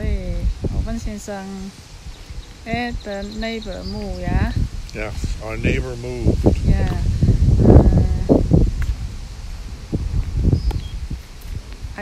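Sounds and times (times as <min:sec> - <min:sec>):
wind on microphone: 0:00.0 - 0:12.0
voice fragments: 0:02.7 - 0:07.2.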